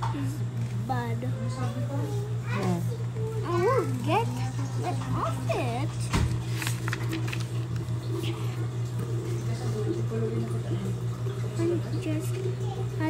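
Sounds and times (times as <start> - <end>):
steady low hum: 0.0 - 13.0
paper rustling: 5.9 - 8.6.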